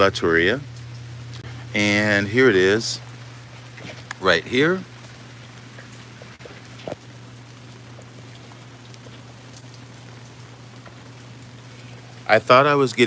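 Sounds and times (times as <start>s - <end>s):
rain falling on patio: 0.0s - 13.0s.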